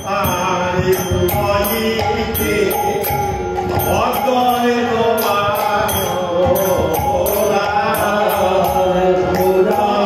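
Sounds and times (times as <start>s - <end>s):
hand cymbals: 0.0s - 10.0s
hand drum beat: 0.0s - 10.0s
harmonium chords: 0.0s - 10.0s
man singing devotional melody: 0.0s - 10.0s.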